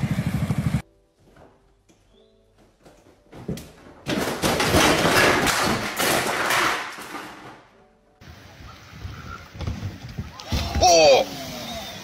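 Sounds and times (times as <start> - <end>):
loud crash and clatter: 4.1 - 7.7.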